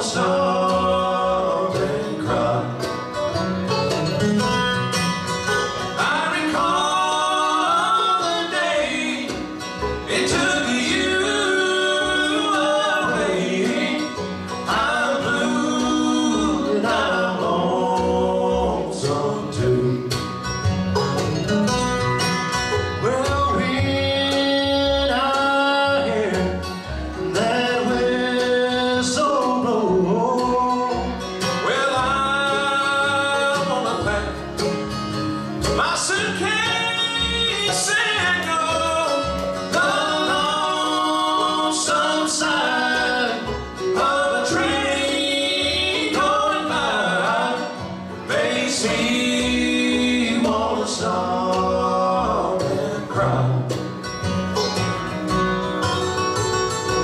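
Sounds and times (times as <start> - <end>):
person singing: 0.0 - 2.9, 6.0 - 20.2, 23.0 - 34.4, 35.7 - 53.8
acoustic guitar: 0.0 - 57.0
banjo: 0.0 - 57.0
mandolin: 0.0 - 57.0
upright bass: 0.0 - 57.0.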